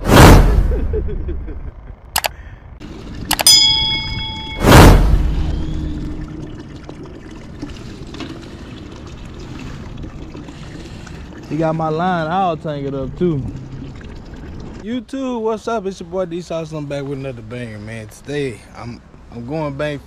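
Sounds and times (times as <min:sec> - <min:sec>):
bell ding: 0:03.3 - 0:05.0
loud whoosh: 0:04.0 - 0:06.3.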